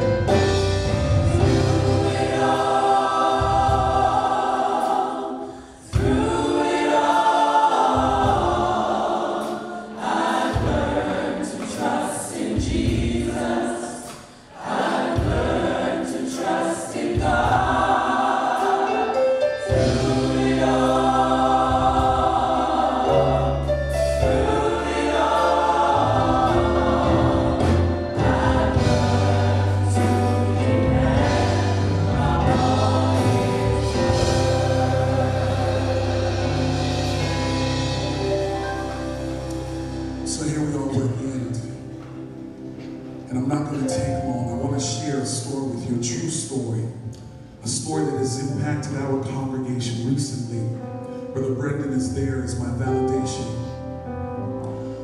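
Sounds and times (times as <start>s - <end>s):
women singing in harmony: 1.4s - 38.4s
organ: 14.8s - 55.0s.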